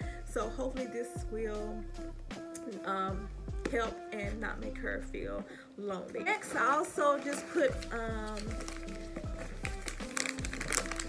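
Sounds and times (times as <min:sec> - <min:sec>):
background music with drum beat: 0:00.0 - 0:04.8, 0:06.5 - 0:11.0
plastic pouches crinkling: 0:06.2 - 0:11.0.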